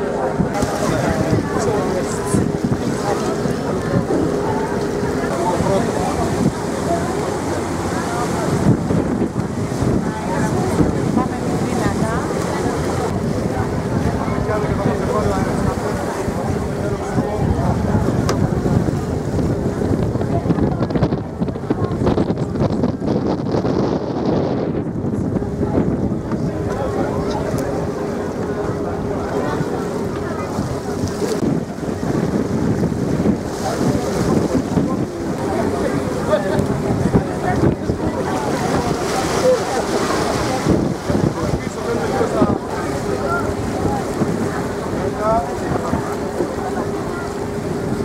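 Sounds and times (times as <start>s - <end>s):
boat engine humming: 0.0s - 48.0s
water rushing along hull: 0.0s - 48.0s
wind buffeting microphone: 0.0s - 48.0s.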